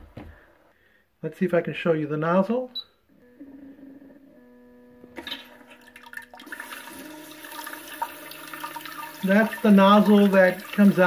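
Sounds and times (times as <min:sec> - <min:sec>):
low electric hum: 0:02.9 - 0:11.0
water spraying into toilet bowl: 0:05.2 - 0:11.0.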